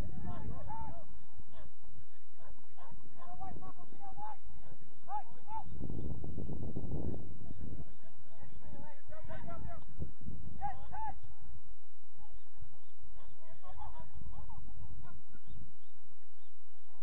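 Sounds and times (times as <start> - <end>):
wind rumble on microphone: 0.0 - 17.0
distant shouts of players: 8.2 - 11.4.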